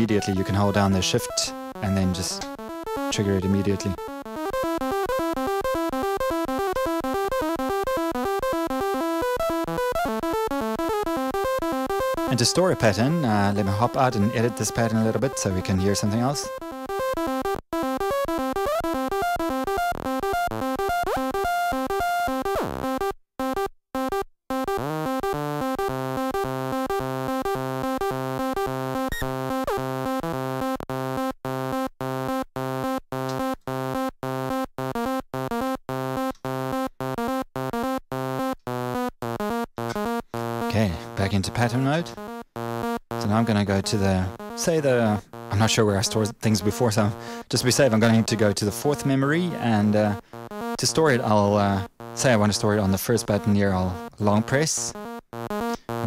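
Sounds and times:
buzzy synth sequence: 0:00.0 - 0:23.1, 0:24.5 - 0:56.0.

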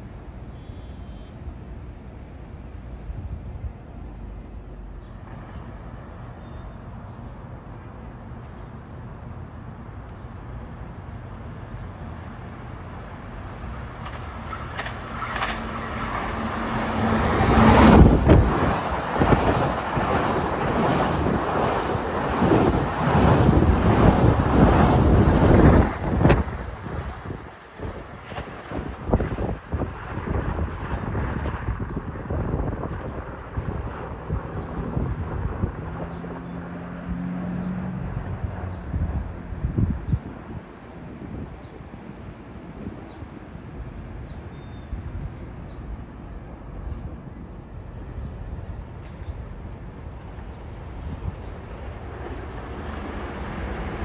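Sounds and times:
distant train rumble: 0:01.4 - 0:54.0
electric train passing: 0:03.9 - 0:28.1, 0:45.3 - 0:54.0.

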